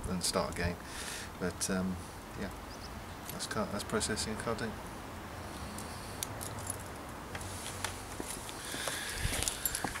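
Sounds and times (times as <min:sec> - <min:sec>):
outdoor background hum: 0:00.0 - 0:10.0.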